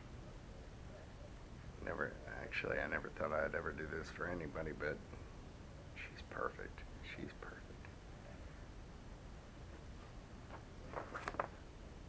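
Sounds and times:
man whispering: 0:05.9 - 0:08.5.

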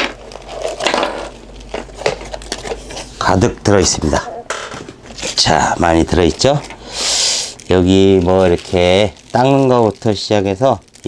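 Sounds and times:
plastic bags rustling: 0:00.0 - 0:04.2, 0:05.0 - 0:11.0.

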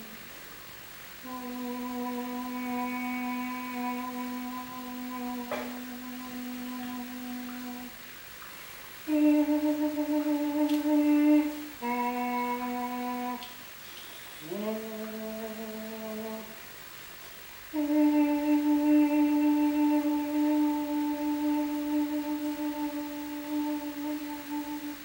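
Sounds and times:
woman singing long notes: 0:00.0 - 0:00.3, 0:01.2 - 0:08.2, 0:09.0 - 0:16.7, 0:17.6 - 0:25.0.

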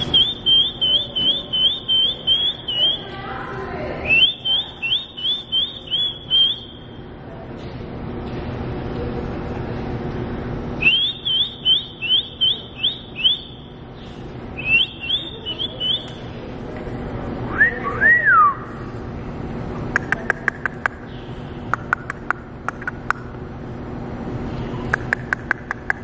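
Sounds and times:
high rising whistled chirps: 0:00.0 - 0:03.1, 0:10.8 - 0:13.8
low background hum: 0:00.0 - 0:26.0
lower arching whistles: 0:10.8 - 0:13.8, 0:14.6 - 0:16.2, 0:17.5 - 0:18.8
sharp clicks: 0:19.9 - 0:21.0, 0:21.7 - 0:23.3, 0:24.9 - 0:26.0.

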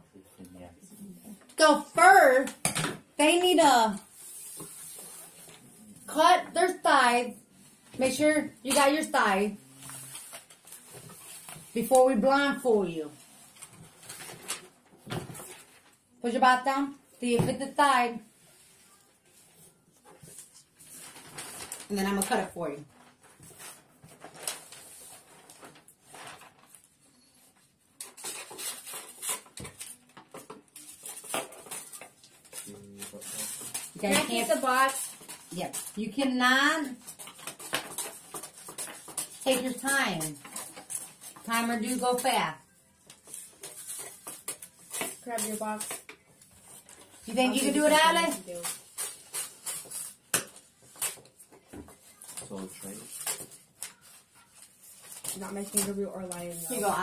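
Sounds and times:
wrapping paper rustling: 0:08.7 - 0:16.2, 0:18.4 - 0:57.0.

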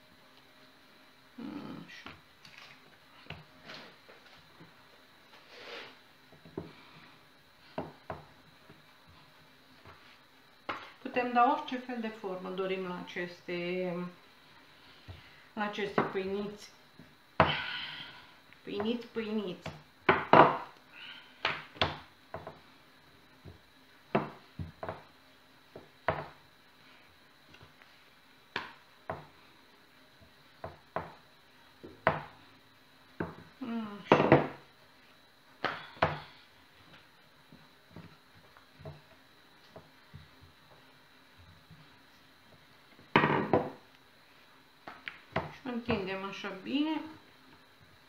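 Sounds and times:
rolling pin knocking on board: 0:19.6 - 0:20.7, 0:24.1 - 0:25.1, 0:25.8 - 0:26.4, 0:30.6 - 0:31.2, 0:31.9 - 0:32.4, 0:34.1 - 0:34.6, 0:43.1 - 0:43.8
people talking: 0:45.6 - 0:47.2.

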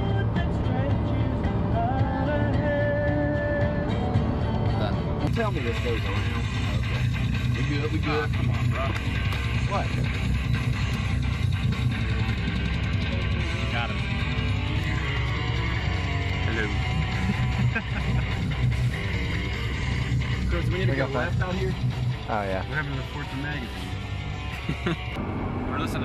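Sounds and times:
low vehicle rumble: 0:00.0 - 0:26.0
rock music on car stereo: 0:00.0 - 0:26.0.

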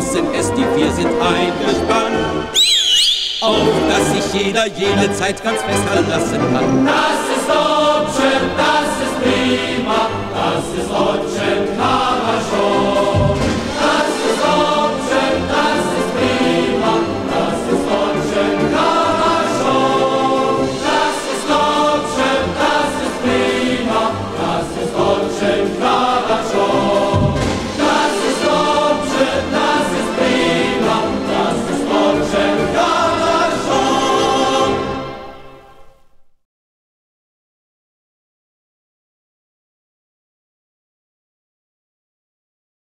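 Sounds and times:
choir singing with instruments: 0:00.0 - 0:05.0, 0:05.9 - 0:35.9.

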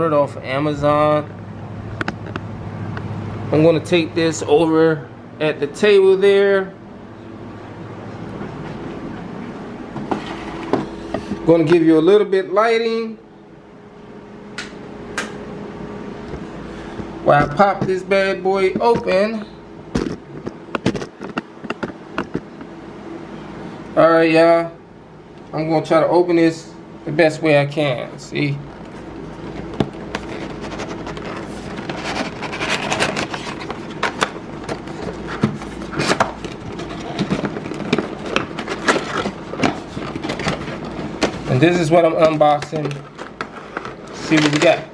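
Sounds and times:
faint steady hum: 0:00.0 - 0:44.9
scraping and rubbing on cardboard: 0:28.9 - 0:41.6.

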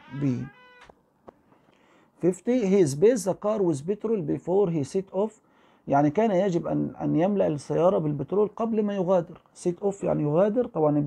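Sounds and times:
high-pitched squeak: 0:00.0 - 0:01.0.

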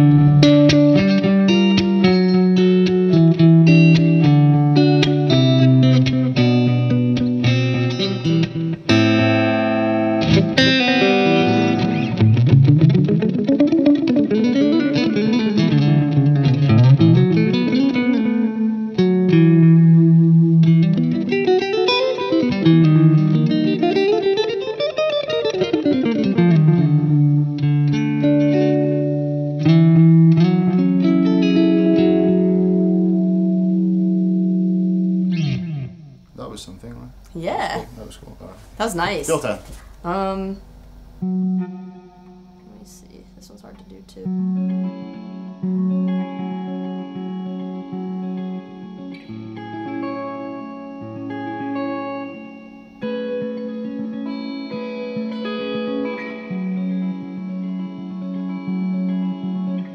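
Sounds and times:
electric guitar playing: 0:00.0 - 0:37.9, 0:38.9 - 0:59.9.

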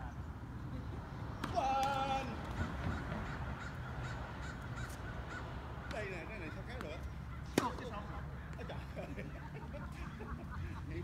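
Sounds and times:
low outdoor background hum: 0:00.0 - 0:11.0
tennis ball struck: 0:07.5 - 0:08.0.

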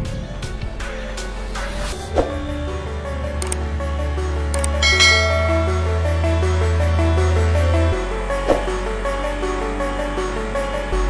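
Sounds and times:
background music: 0:00.0 - 0:11.0
notification bell ding: 0:04.8 - 0:05.9.

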